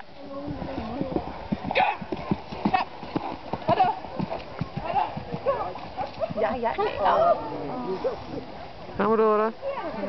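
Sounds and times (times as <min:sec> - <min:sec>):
horse hoofbeats on dirt: 0:00.2 - 0:07.0.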